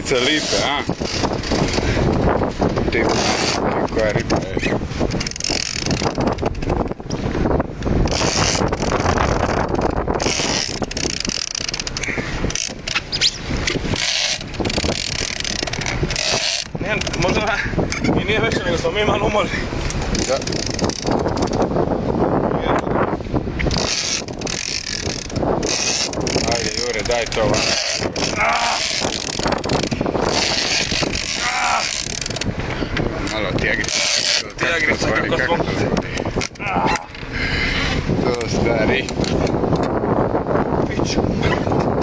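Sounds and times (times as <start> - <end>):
water rushing along hull: 0.0 - 42.0
wind buffeting microphone: 0.0 - 42.0
fishing reel ratcheting whir: 0.2 - 1.8, 5.1 - 6.7, 8.1 - 16.7, 20.1 - 21.7, 23.7 - 32.5, 33.3 - 34.5.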